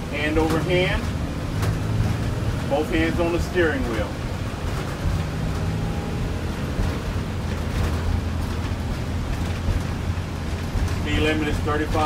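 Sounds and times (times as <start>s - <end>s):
bus engine humming: 0.0s - 12.0s
road and tyre noise: 0.0s - 12.0s.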